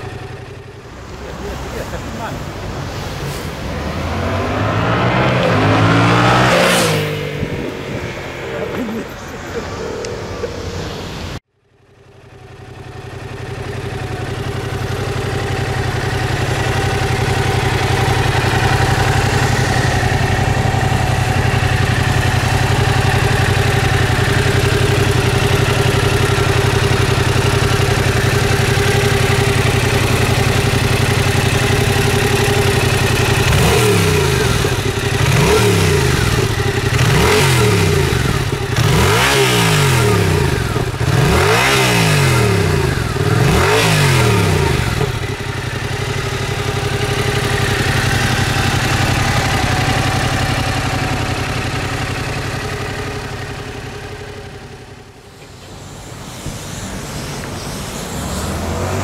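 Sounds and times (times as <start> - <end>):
motorcycle engine idling: 0.0 - 3.0, 11.5 - 58.0
engine revving: 0.0 - 11.5, 12.6 - 59.0.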